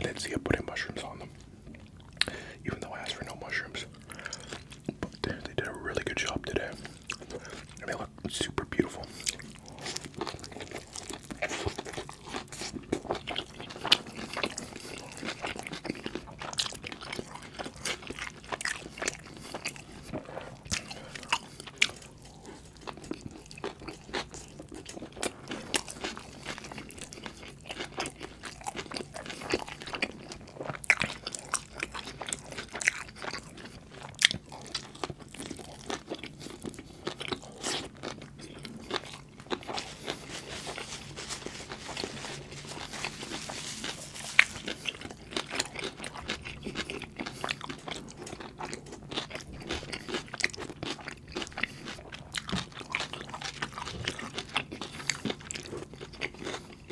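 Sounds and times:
chewing and biting burger: 3.0s - 56.9s.

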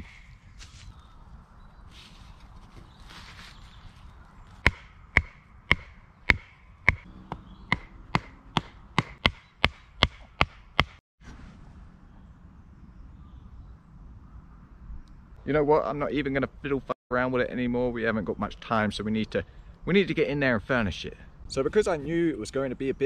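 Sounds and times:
hammer knocking tent peg: 4.7s - 11.0s.

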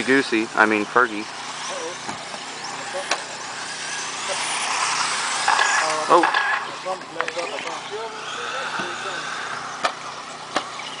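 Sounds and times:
rc car motor whine: 0.0s - 11.0s
tyres on dirt: 0.0s - 11.0s.

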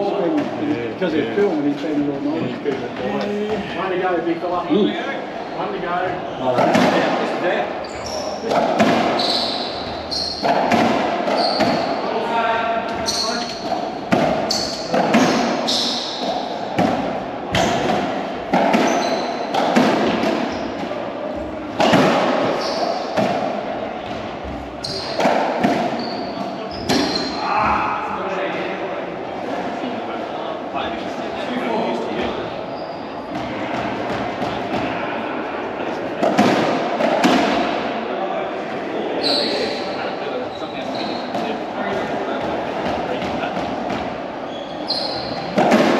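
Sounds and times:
racquetball hits echoing: 6.4s - 28.7s, 33.2s - 35.2s, 36.0s - 38.0s, 40.9s - 45.9s
shoes squeaking on wooden floor: 7.8s - 12.2s, 12.8s - 16.6s, 18.5s - 23.2s, 24.4s - 27.8s, 39.2s - 41.3s, 44.4s - 45.7s.

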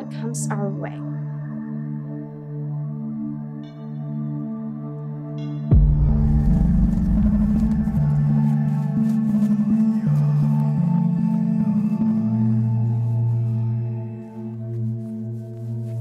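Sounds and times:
low drone notes: 5.7s - 10.1s.

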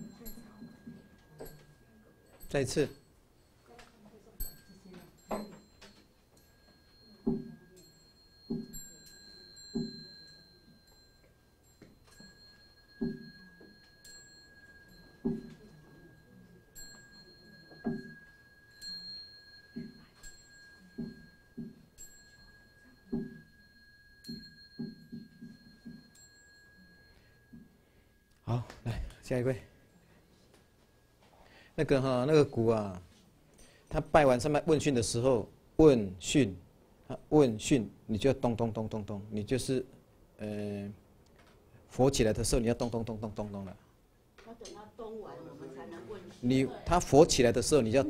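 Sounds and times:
bowl bell ringing: 0.0s - 31.2s.

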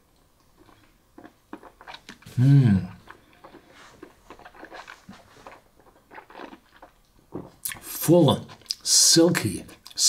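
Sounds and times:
wet mouth sipping sounds: 0.6s - 7.0s.

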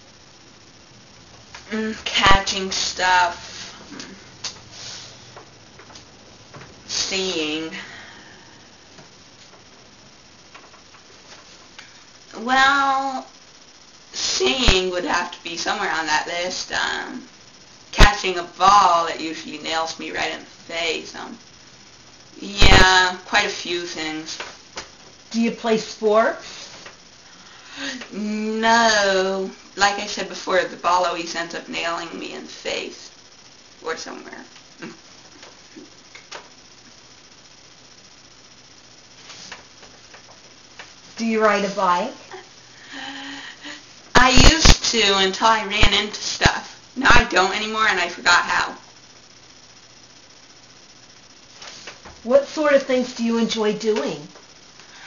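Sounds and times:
low hum and hiss: 0.0s - 55.0s.

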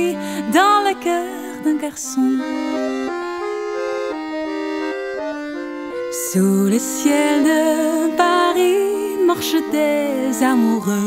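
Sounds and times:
accordion playing slow melody: 0.0s - 11.0s.

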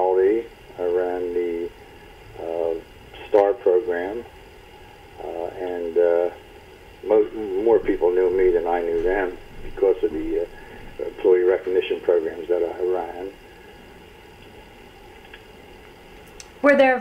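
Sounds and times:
man speaking: 0.0s - 1.7s, 2.4s - 4.3s, 5.2s - 6.4s, 7.0s - 13.4s
faint background noise: 0.0s - 17.0s.

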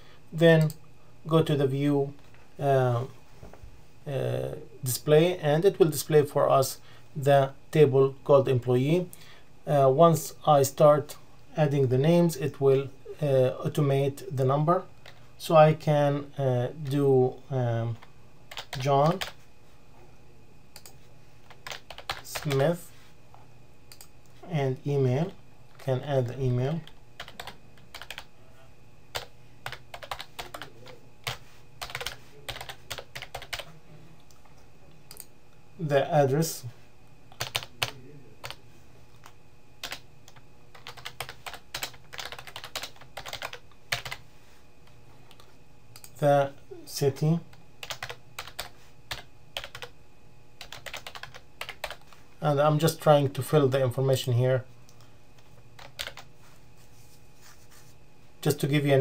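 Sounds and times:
keyboard typing: 18.0s - 19.4s, 20.8s - 22.6s, 26.8s - 28.3s, 29.1s - 33.7s, 37.3s - 38.6s, 39.2s - 44.2s, 47.8s - 49.9s, 50.6s - 52.1s, 55.8s - 56.3s.

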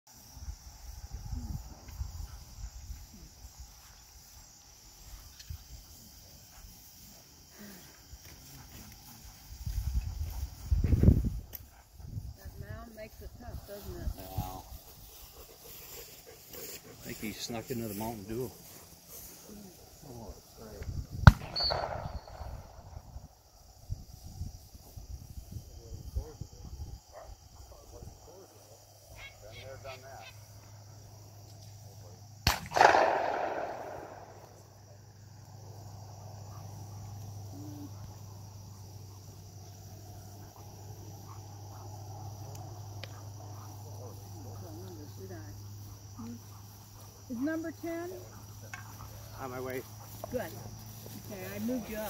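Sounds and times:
gunshots: 21.2s - 22.5s, 32.4s - 34.4s
gunshot echo: 21.2s - 22.7s, 32.4s - 34.4s.

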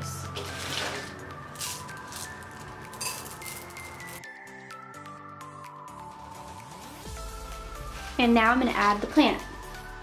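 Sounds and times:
quiet electronic music: 0.0s - 10.0s.

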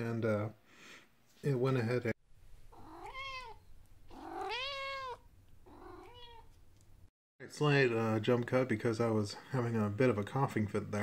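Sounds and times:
cat meowing: 2.7s - 6.5s.

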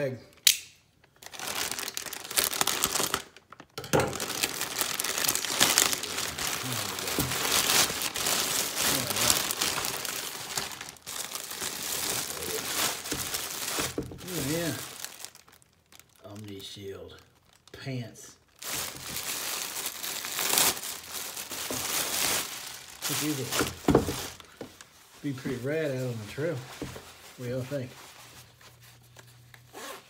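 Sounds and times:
plastic bag crinkling: 1.0s - 30.0s.

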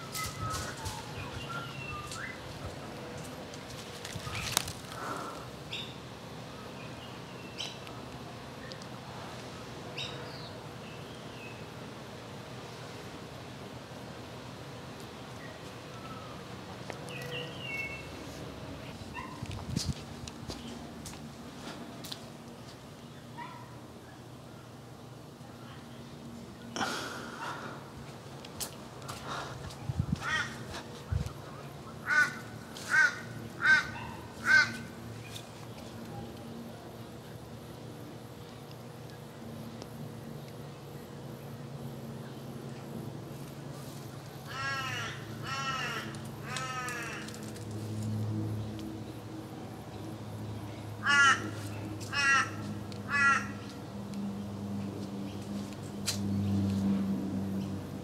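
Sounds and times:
crows cawing: 30.2s - 30.8s, 32.0s - 35.0s, 44.5s - 47.4s, 51.0s - 53.8s.

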